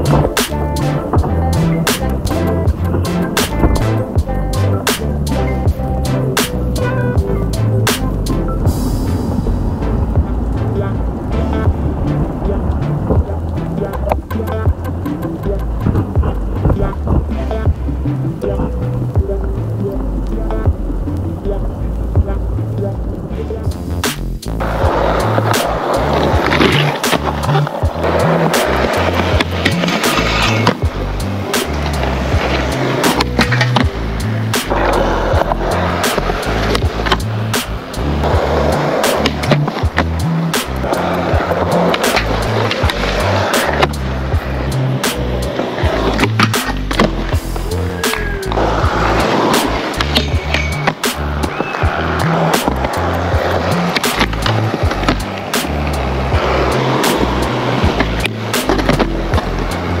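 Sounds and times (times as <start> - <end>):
skateboard pops and landings: 0.0 - 5.2, 24.0 - 47.4, 48.1 - 60.0
background music with steady beat: 0.0 - 60.0
skateboard grinding on rail: 0.0 - 60.0
skateboard wheels rolling on concrete: 0.0 - 60.0.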